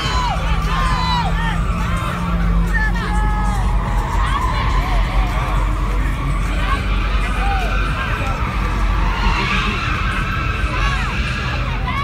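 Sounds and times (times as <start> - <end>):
crowd noise: 0.0 - 12.0
crowd whooping: 0.0 - 12.0
engines idling: 0.0 - 12.0.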